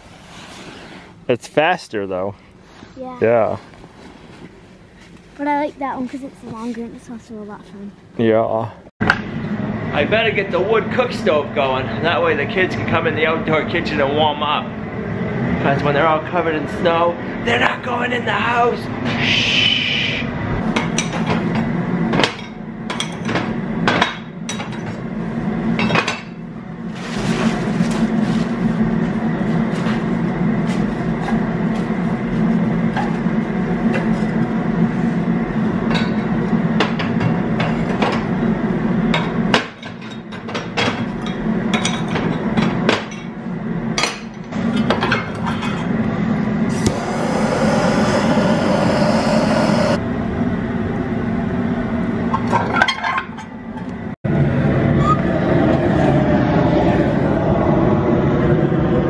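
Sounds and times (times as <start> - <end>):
loud rushing noise: 46.7 - 50.1
low hum: 46.7 - 50.1.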